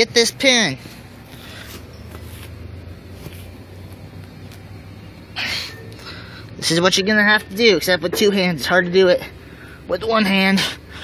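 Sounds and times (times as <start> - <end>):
steady low hum: 0.0 - 11.0
faint rustling: 0.8 - 6.1.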